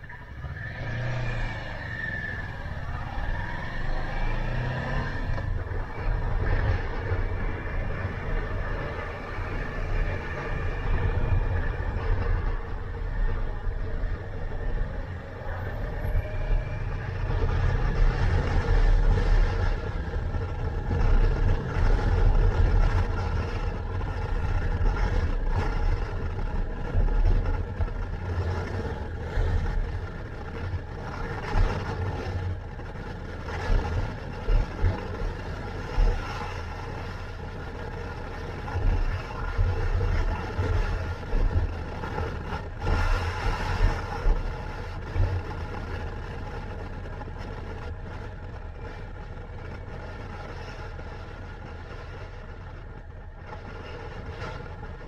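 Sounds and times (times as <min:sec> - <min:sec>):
wind rumble: 0:00.0 - 0:55.0.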